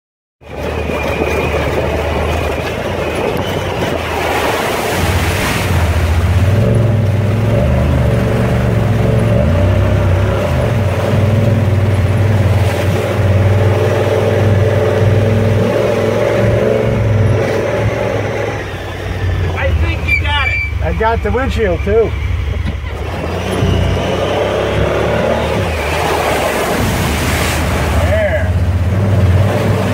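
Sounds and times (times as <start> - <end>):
water splashing: 0.4 - 29.9
vehicle engine revving: 0.5 - 29.9.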